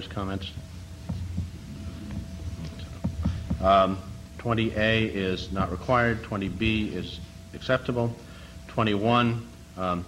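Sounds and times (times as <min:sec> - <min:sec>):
soft low knocks: 0:00.0 - 0:06.8
low electrical hum: 0:00.0 - 0:10.0.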